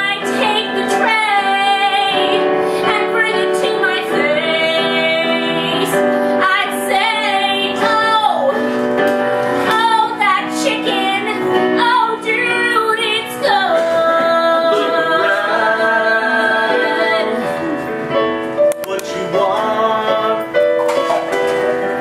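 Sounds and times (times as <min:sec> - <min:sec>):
woman singing: 0:00.0 - 0:08.7, 0:09.6 - 0:17.9
digital piano accompaniment: 0:00.0 - 0:22.0.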